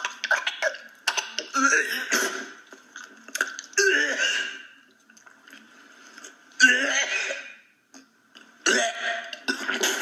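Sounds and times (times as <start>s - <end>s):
person making rough throaty sounds: 3.3s - 4.7s, 8.6s - 10.0s.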